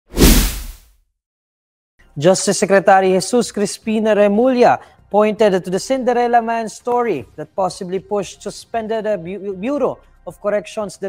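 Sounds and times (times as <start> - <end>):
deep whoosh: 0.2 - 0.8.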